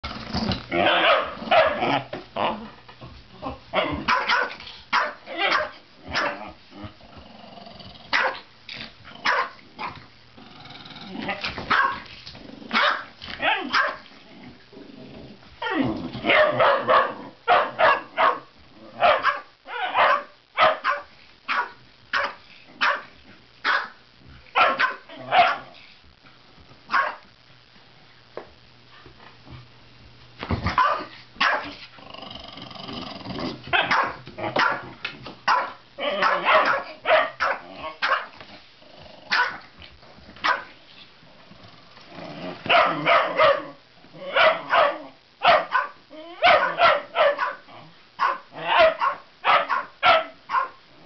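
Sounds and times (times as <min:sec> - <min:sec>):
dogs growling: 0:00.0 - 0:04.1, 0:05.3 - 0:11.5, 0:12.2 - 0:17.5, 0:31.8 - 0:34.6, 0:37.6 - 0:40.2, 0:41.2 - 0:45.2
dogs barking: 0:00.8 - 0:01.9, 0:03.8 - 0:06.4, 0:08.1 - 0:08.5, 0:09.2 - 0:09.6, 0:11.7 - 0:12.0, 0:12.7 - 0:14.0, 0:16.2 - 0:24.0, 0:24.6 - 0:25.7, 0:26.9 - 0:27.2, 0:30.7 - 0:31.7, 0:33.7 - 0:34.8, 0:35.5 - 0:38.3, 0:39.3 - 0:39.6, 0:40.4 - 0:40.7, 0:42.7 - 0:50.8.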